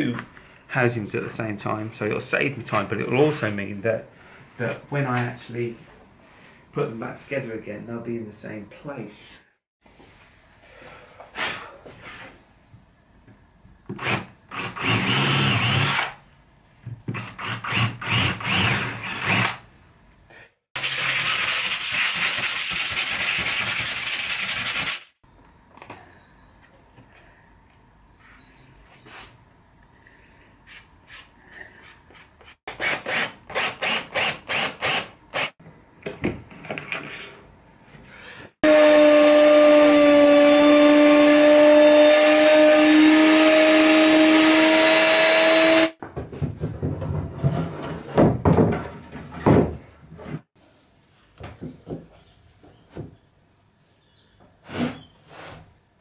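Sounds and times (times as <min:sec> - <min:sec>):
router whining: 0:38.6 - 0:46.0.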